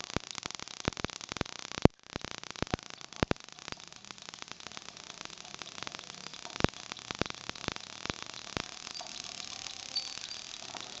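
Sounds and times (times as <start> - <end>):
electric spark snaps: 0.0 - 11.0
faint crackle: 0.0 - 11.0.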